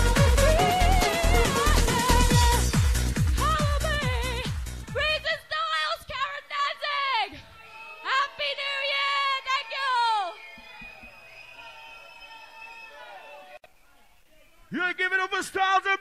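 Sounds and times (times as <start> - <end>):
rave music with vocal line: 0.0 - 5.2
mc shouting: 0.0 - 10.4.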